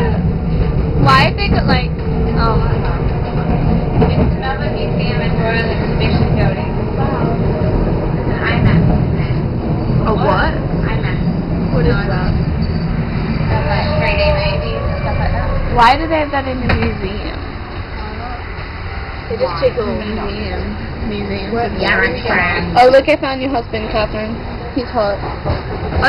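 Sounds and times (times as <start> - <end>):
tram rumbling on tracks: 0.0 - 26.0
people talking: 1.0 - 9.4, 10.0 - 12.4, 13.5 - 18.4, 19.3 - 25.3.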